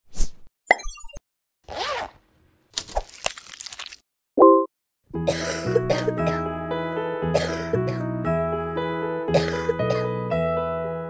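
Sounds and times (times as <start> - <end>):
bubbly blips: 0.7 - 1.2.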